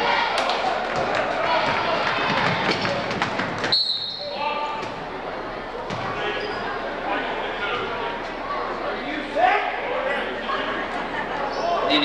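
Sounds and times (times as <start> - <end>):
crowd voices: 0.0 - 12.0
referee's whistle: 3.7 - 4.4.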